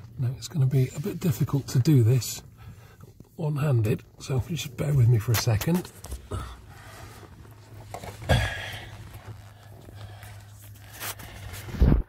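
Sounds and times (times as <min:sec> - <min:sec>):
low steady hum: 0:00.0 - 0:12.0
phone handling rustling and scraping: 0:07.2 - 0:08.3.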